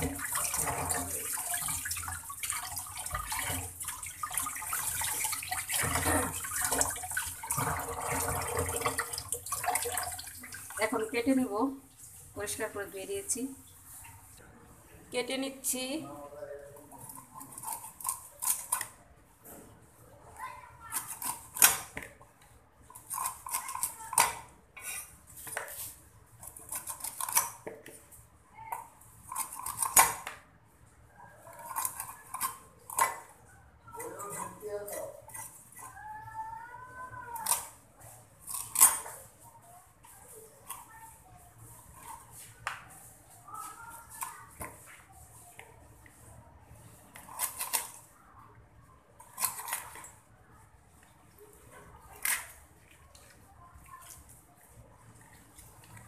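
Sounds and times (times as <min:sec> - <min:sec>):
hands rinsing fish: 0:00.0 - 0:12.6.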